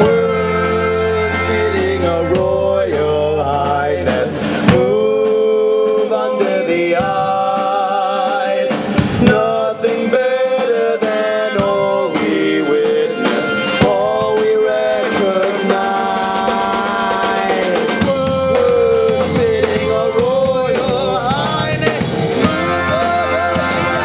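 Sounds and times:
drum rimshots: 0.0s - 24.0s
rock band playing: 0.0s - 24.0s.

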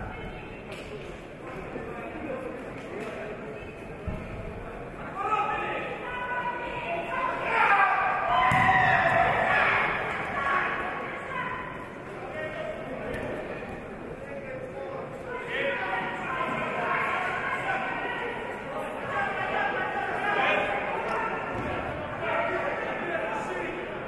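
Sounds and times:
people shouting in echoing hall: 5.0s - 12.7s, 15.2s - 24.0s
thud: 8.4s - 9.2s.

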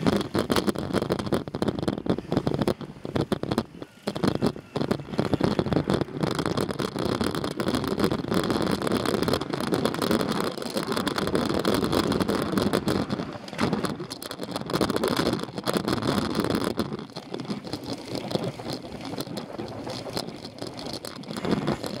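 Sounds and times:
bicycle riding rush: 0.0s - 22.0s.

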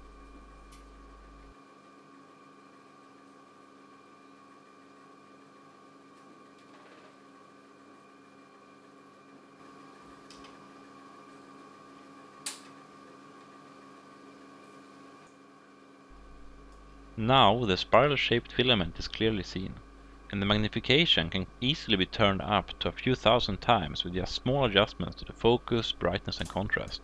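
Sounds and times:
microscope hum and whine: 0.0s - 27.0s.

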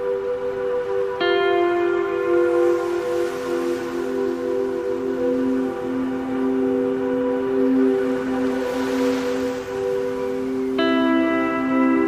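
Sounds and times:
sustained chord music: 0.0s - 12.0s.

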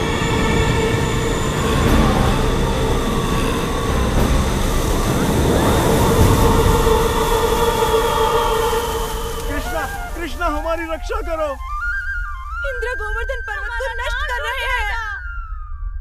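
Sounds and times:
rushing wind rumble: 0.0s - 15.8s
sustained pitched tones: 0.0s - 16.0s.

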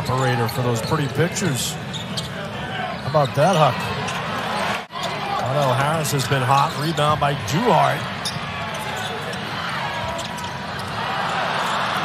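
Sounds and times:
arena crowd noise: 0.0s - 12.0s.

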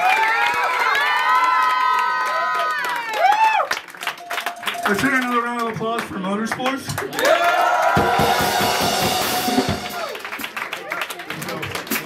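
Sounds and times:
crowd cheering and whooping: 0.0s - 4.6s, 7.1s - 11.0s.

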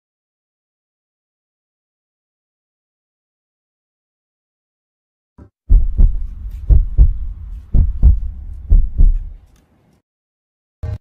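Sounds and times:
heartbeat double thumps: 5.7s - 9.4s.

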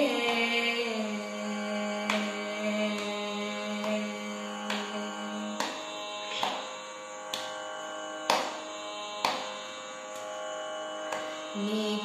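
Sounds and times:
tanpura drone: 0.0s - 12.0s
plucked string: 3.8s - 6.7s, 9.2s - 10.2s.

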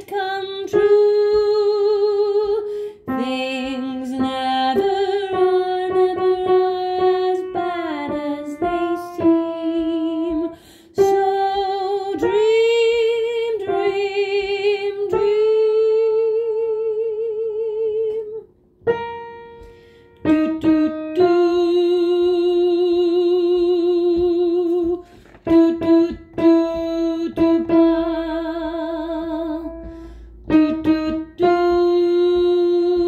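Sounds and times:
piano chord: 0.0s - 16.8s, 18.8s - 33.0s
soprano singing with vibrato: 0.0s - 19.1s, 20.2s - 33.0s.

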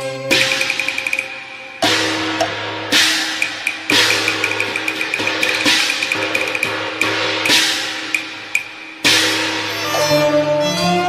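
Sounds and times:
cymbal crashes: 0.0s - 10.3s
gongs and drums: 0.0s - 10.4s
woodblock ticks: 0.3s - 1.4s, 2.4s - 8.7s.

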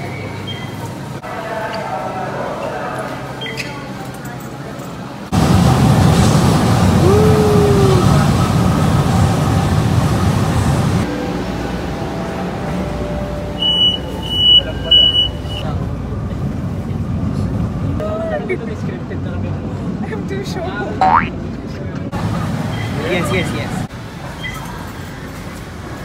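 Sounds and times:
train rumble: 4.0s - 26.0s
short high beeps: 13.6s - 15.6s.

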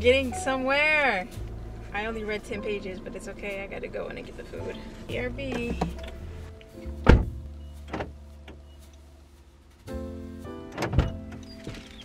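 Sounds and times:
car door clunk: 4.7s - 6.2s, 7.0s - 8.6s, 10.7s - 12.0s
car door latch click: 7.0s - 8.6s, 10.7s - 11.8s.

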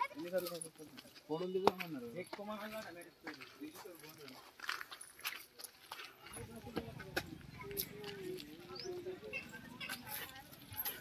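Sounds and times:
distant people talking: 6.0s - 11.0s.

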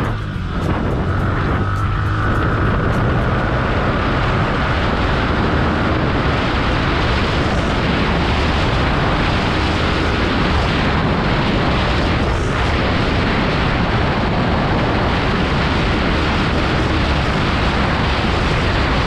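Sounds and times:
motorcycle engine running: 0.0s - 19.0s
wind buffeting microphone: 0.0s - 19.0s.

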